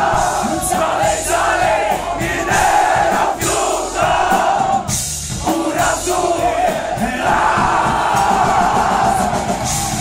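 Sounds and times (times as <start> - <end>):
crowd yelling together: 5.7 - 10.0.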